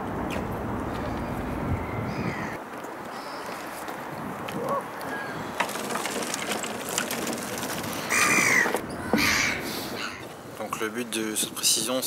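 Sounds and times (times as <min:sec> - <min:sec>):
outdoor background noise: 0:00.0 - 0:12.0
bird cry: 0:01.0 - 0:03.8, 0:04.6 - 0:05.6, 0:08.1 - 0:10.3.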